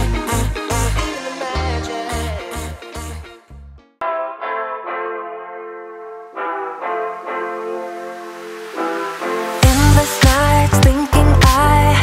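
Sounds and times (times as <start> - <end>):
beat with heavy bass and drums: 0.0 - 3.2, 9.6 - 12.0
held brass-like chords: 4.0 - 10.7.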